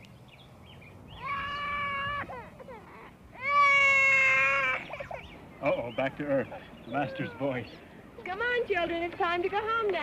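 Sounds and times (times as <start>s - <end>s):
toddler wailing: 1.2s - 5.3s, 7.0s - 7.6s.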